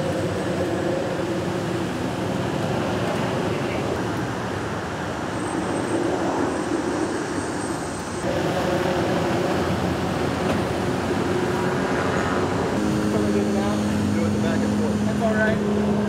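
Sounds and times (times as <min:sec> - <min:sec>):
vehicle engines idling: 0:00.0 - 0:16.0
humming tone: 0:08.1 - 0:16.0.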